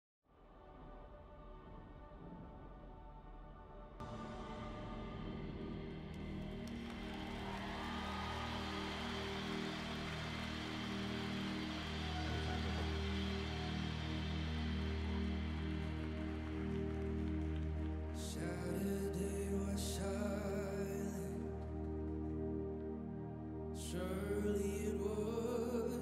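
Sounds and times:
ambient worship band music: 0.6 - 26.0.

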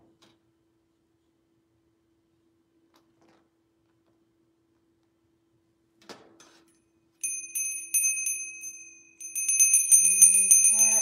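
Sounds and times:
hand bell ringing: 7.2 - 11.0.

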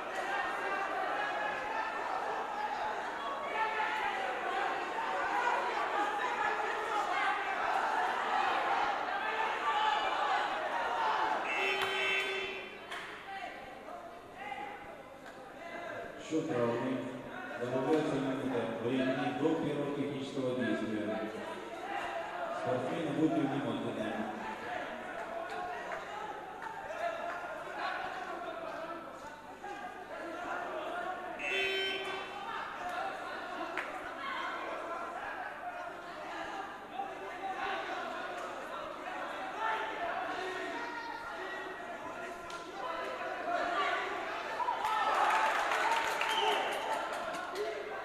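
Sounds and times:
people talking in a hall: 0.0 - 48.0.

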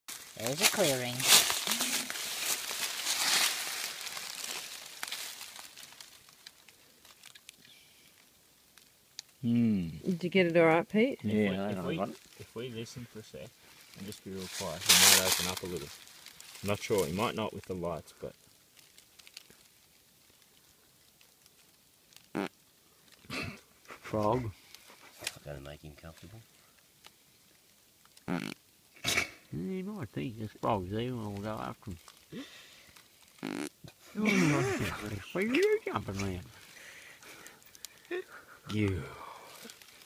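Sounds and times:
dry leaves rustling and crunching: 0.1 - 8.2, 11.5 - 13.0, 13.6 - 21.8, 31.2 - 40.0
frog croaking: 22.2 - 22.6, 28.2 - 29.8, 33.4 - 34.0.

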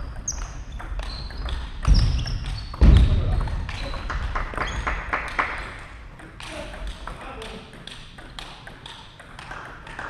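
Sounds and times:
table tennis ball bouncing: 0.0 - 10.0.

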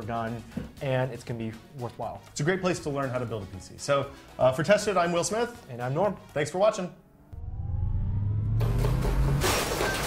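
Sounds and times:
rising whine: 7.0 - 9.8
deep rumble: 7.3 - 9.7.

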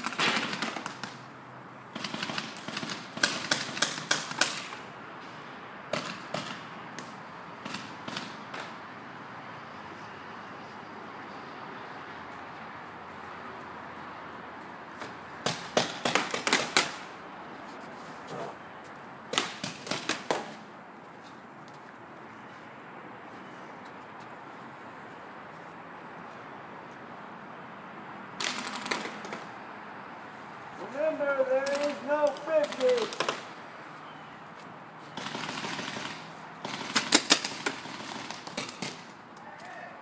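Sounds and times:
paintball markers firing: 0.0 - 1.2, 1.9 - 4.8, 15.4 - 17.0, 28.4 - 29.5, 31.6 - 33.5.

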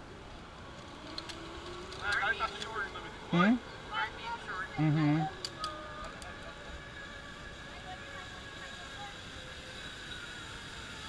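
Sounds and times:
zip line trolley whirring: 0.0 - 11.0
voices: 1.9 - 9.5.

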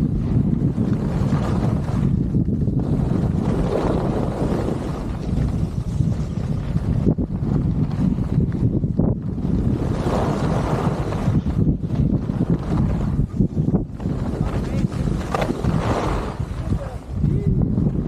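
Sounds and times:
skis running over snow: 0.0 - 18.0
wind buffeting microphone: 0.0 - 18.0.

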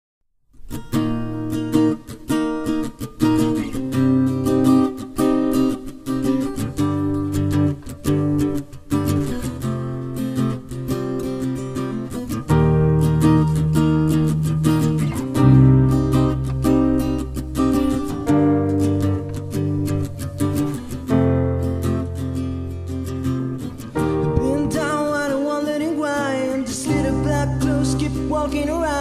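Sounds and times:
strummed acoustic guitar chords: 0.6 - 29.0.

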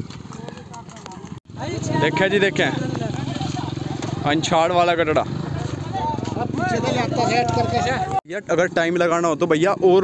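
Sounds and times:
motorcycle engine running: 0.0 - 8.2
men talking in a crowd: 0.3 - 10.0.

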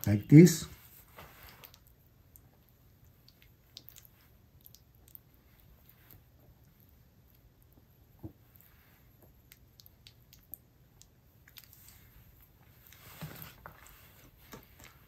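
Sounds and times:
soft squishes of raw liver: 0.8 - 15.0.

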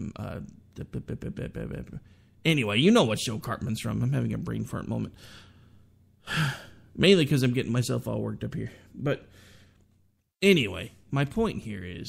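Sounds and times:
faint breath: 5.2 - 6.9, 8.7 - 9.9
man sighing: 6.2 - 6.9.

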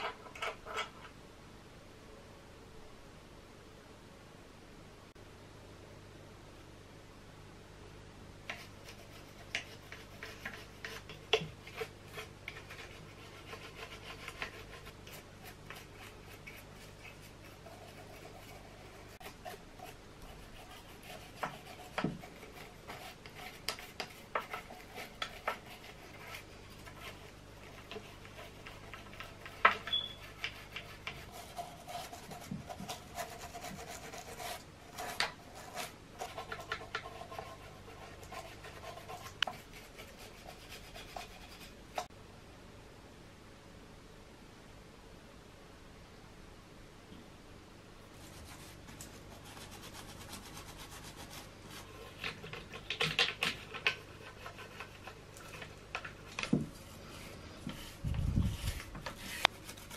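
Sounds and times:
toothbrush scrubbing metal: 8.5 - 42.1, 48.2 - 59.9.

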